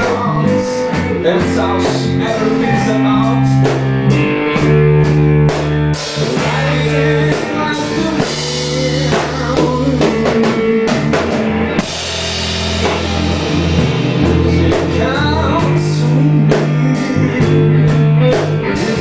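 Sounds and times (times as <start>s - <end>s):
drum kit beat: 0.0s - 19.0s
electric bass: 0.0s - 19.0s
electric guitar: 0.0s - 19.0s.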